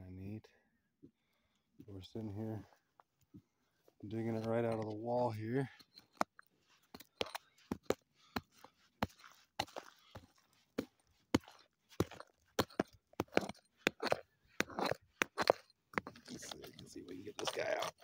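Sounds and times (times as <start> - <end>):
rock pick striking dirt and rock: 4.2 - 18.0.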